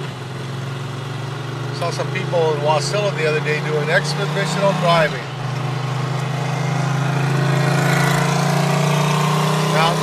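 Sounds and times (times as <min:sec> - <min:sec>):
car engine drone: 0:00.0 - 0:10.0.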